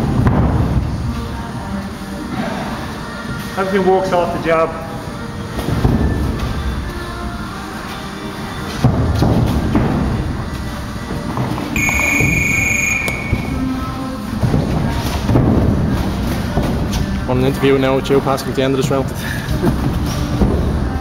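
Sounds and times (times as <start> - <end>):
music playing: 0.0 - 21.0
high steady beep: 11.8 - 13.6.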